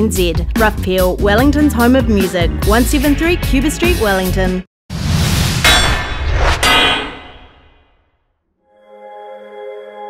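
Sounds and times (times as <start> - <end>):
metallic clangs: 5.6 - 7.8.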